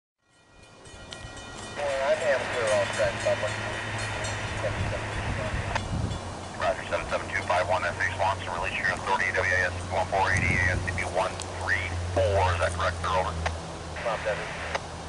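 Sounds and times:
steady low hum: 0.4s - 15.0s
voice over radio scanner: 1.8s - 3.5s, 4.6s - 5.8s, 6.6s - 13.4s, 14.0s - 14.8s.

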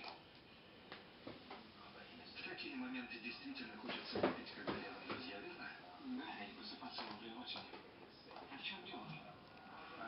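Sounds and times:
faint distant speech from television: 0.0s - 10.0s.

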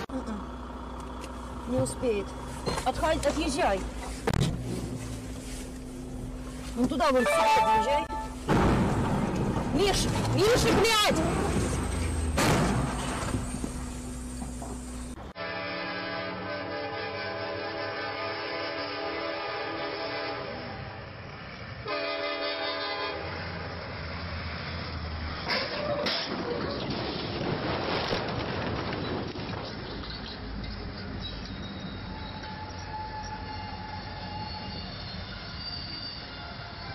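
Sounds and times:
train rumbling along rails: 0.0s - 36.9s
locomotive air horn: 7.0s - 8.5s, 15.3s - 21.1s, 21.8s - 23.7s, 32.0s - 36.9s.

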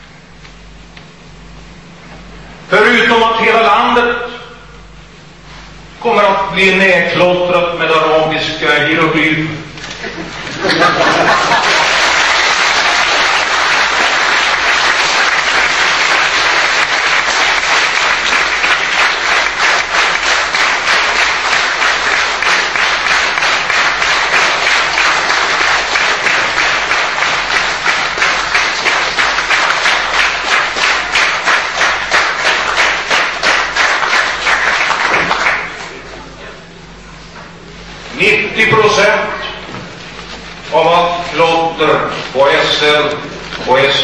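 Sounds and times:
large audience applauding: 10.6s - 36.0s.

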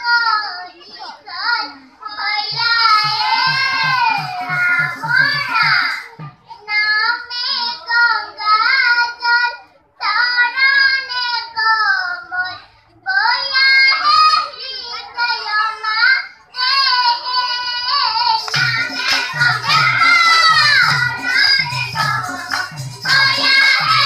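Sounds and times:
children singing unaccompanied: 0.0s - 24.0s.

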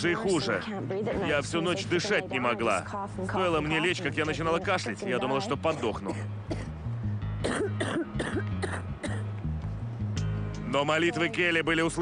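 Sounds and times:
background music with bass line: 1.2s - 12.0s
woman coughing: 5.9s - 6.8s, 7.4s - 9.3s.

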